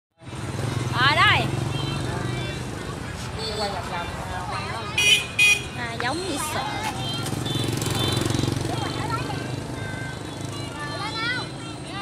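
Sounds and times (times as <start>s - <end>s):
voices: 0.2s - 12.0s.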